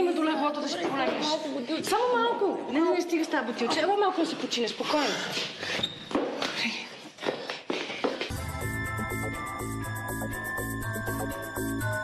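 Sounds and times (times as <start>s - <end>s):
footsteps and shuffling: 4.2s - 8.6s
music with steady bass: 8.3s - 12.0s.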